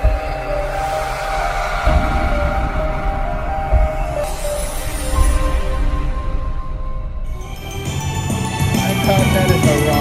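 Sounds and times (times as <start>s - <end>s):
whoosh: 0.0s - 8.0s
deep low rumble: 0.0s - 9.0s.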